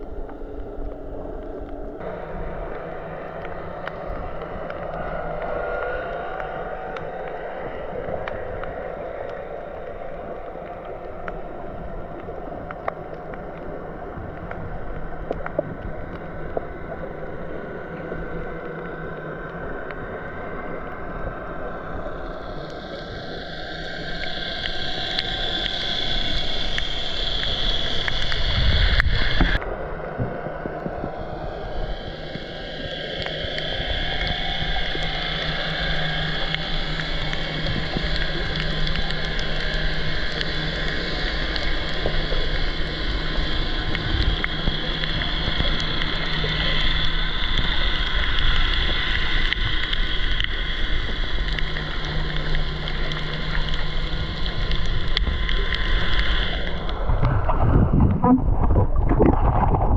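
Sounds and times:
underwater boat engine hum: 0.0s - 59.9s.

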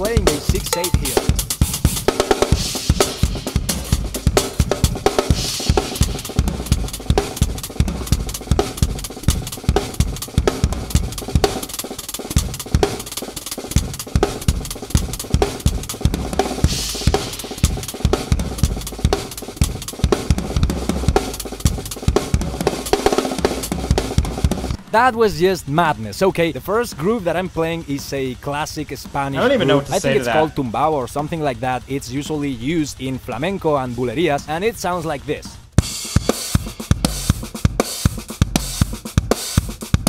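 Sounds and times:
drum kit grooves: 0.0s - 40.0s.

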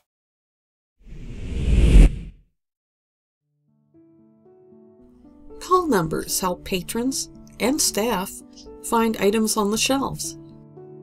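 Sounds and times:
whoosh with deep rumble: 1.1s - 2.4s.

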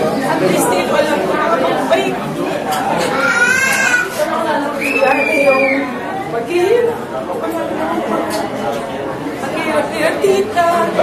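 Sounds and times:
overlapping voices chatter: 0.0s - 11.0s.

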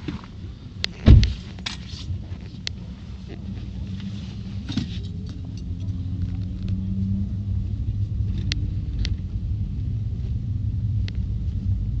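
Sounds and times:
truck engine and tyres rumbling: 0.0s - 12.0s.

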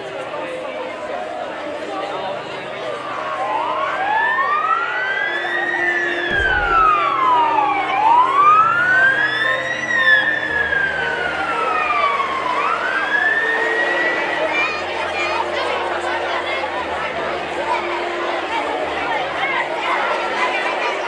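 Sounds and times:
fire engine sirens wailing: 1.6s - 21.0s.

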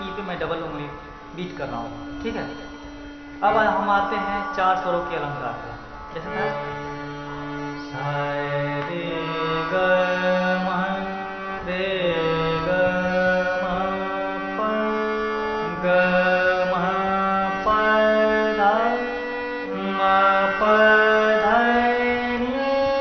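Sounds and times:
harmonium playing scale: 0.0s - 23.0s
man singing note names: 3.4s - 6.7s.

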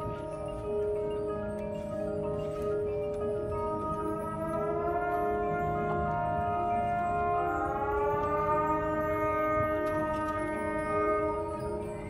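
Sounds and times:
marching band sustained chord: 0.0s - 12.0s.

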